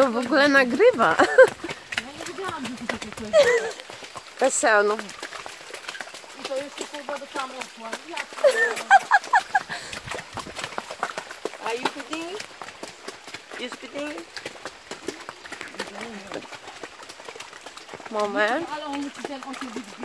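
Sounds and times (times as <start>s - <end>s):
voices: 0.0s - 5.1s, 6.4s - 10.0s, 18.0s - 20.0s
horse hooves on muddy trail: 0.0s - 20.0s.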